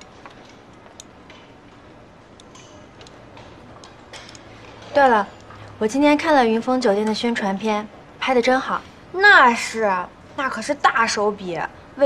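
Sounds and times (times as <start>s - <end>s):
chopsticks clicking against dishes: 0.0s - 5.8s.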